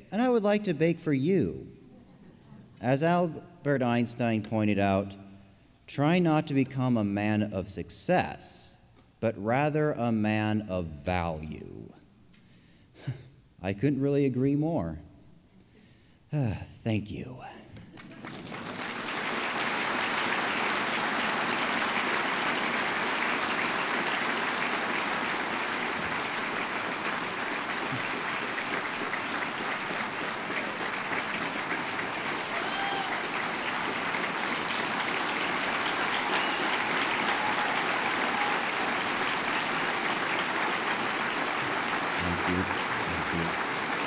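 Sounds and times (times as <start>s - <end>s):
audience applauding: 18.0s - 44.0s.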